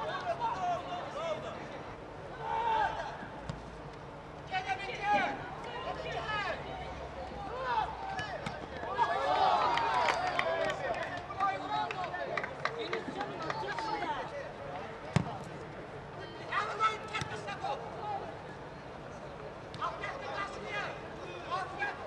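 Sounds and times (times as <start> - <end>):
players shouting: 2.3 - 3.4, 7.4 - 12.1.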